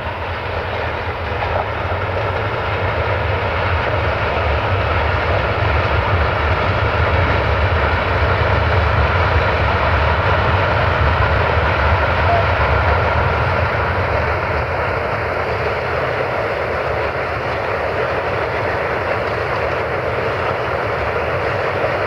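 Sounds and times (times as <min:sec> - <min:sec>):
freight train rolling past: 0:00.0 - 0:22.0.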